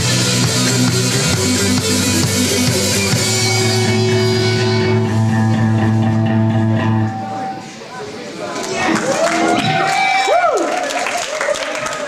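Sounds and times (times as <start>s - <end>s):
live rock band playing loudly: 0.0s - 7.6s.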